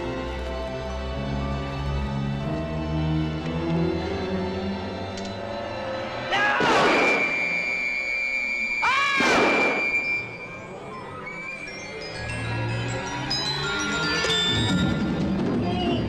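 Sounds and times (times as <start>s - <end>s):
synthesized horror score: 0.0s - 16.0s.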